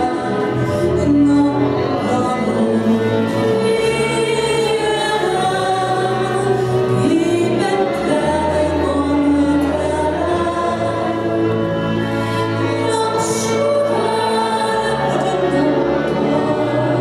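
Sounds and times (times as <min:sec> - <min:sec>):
woman singing: 0:00.0 - 0:11.4, 0:12.6 - 0:17.0
double bass: 0:00.0 - 0:17.0
violin: 0:00.0 - 0:17.0.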